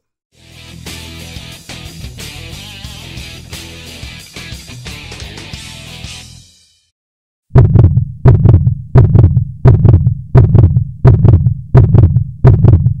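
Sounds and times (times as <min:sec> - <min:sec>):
heartbeat: 0:07.5 - 0:13.0.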